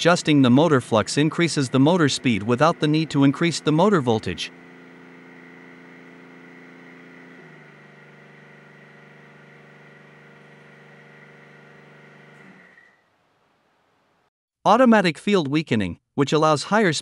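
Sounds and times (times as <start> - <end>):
servo motor whine: 0.9 - 13.0.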